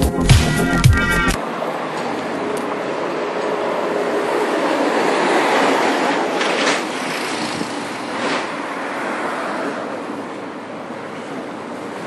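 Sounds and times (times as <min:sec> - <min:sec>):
passing vehicles rushing: 0:01.4 - 0:12.0.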